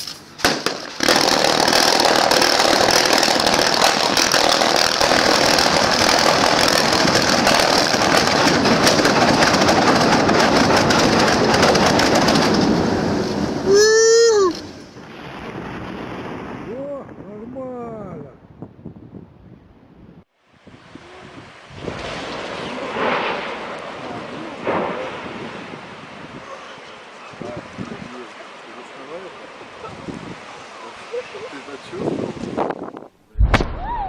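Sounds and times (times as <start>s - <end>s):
underwater explosion cracks: 0.4s - 13.7s, 14.6s - 17.3s, 21.7s - 26.4s, 33.3s - 34.0s
rush of erupting water: 1.0s - 16.9s, 20.4s - 32.6s.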